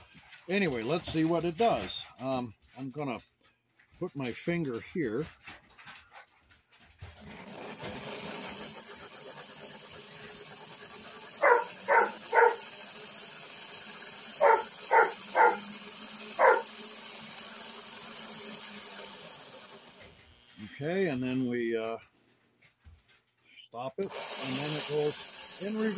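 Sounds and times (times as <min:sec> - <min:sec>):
toy train motor whirring: 0:07.0 - 0:22.0, 0:23.8 - 0:25.9
dogs barking: 0:11.4 - 0:12.7, 0:14.4 - 0:15.7, 0:16.4 - 0:16.8.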